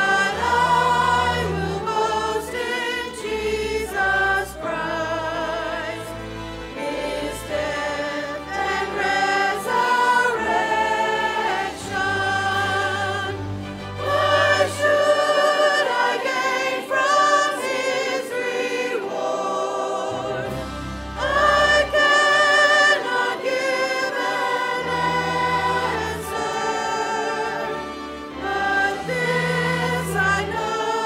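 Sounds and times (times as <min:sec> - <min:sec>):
choir singing gospel: 0:00.0 - 0:31.0
instrumental accompaniment: 0:00.0 - 0:31.0.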